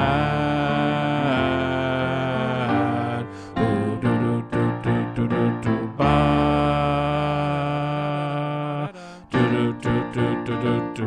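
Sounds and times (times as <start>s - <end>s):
voices singing sustained chord: 0.0s - 11.0s.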